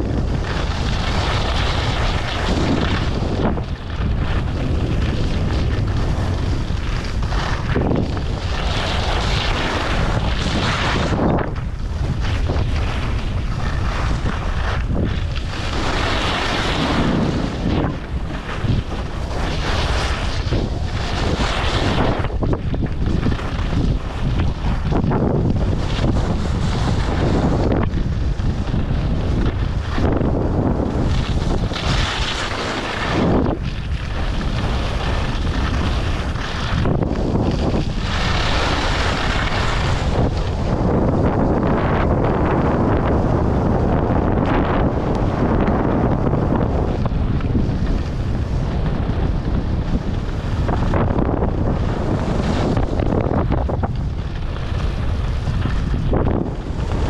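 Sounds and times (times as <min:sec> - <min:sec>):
skis scraping over snow: 0:00.0 - 0:57.0
wind buffeting microphone: 0:00.0 - 0:57.0.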